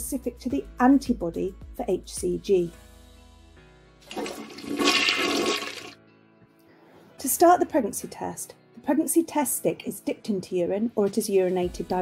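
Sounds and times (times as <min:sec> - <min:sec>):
faint background music: 0:00.0 - 0:12.0
toilet flushing: 0:04.0 - 0:06.0.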